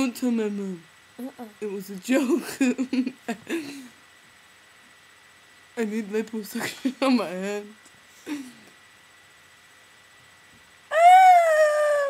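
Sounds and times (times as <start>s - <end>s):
girl's long howling cry: 10.9s - 12.0s.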